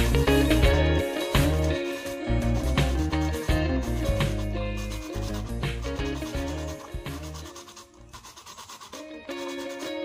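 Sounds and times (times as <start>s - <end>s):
background music: 0.0s - 10.0s
sanding plastic on sandpaper: 0.0s - 10.0s.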